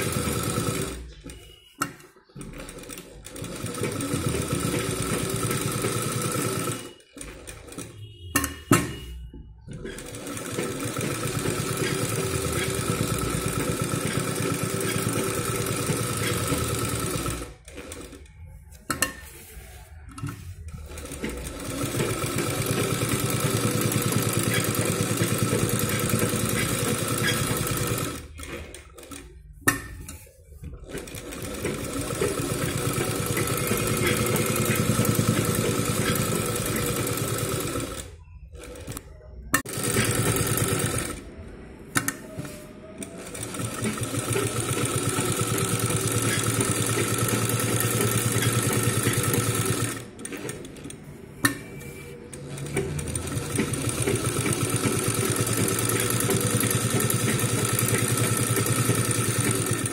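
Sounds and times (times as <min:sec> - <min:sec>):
sewing machine stitching: 0:00.0 - 0:41.3, 0:42.0 - 0:59.9.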